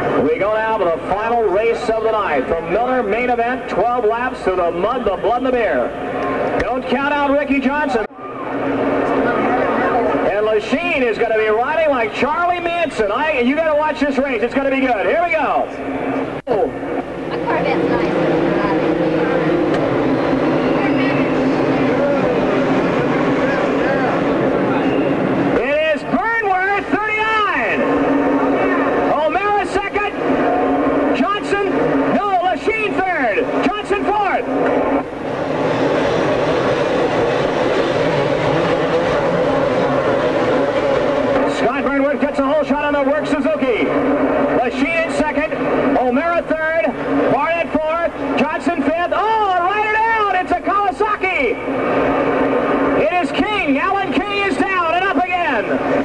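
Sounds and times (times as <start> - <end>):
motocross bike engines revving: 8.6 - 50.8.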